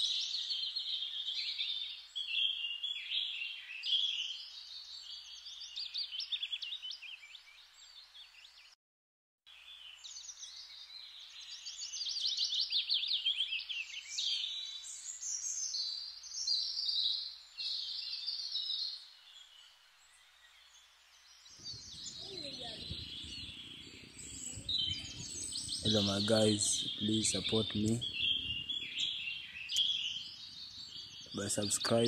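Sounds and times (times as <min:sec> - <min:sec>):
birds chirping and trilling: 0:00.0 - 0:08.8, 0:09.6 - 0:32.0.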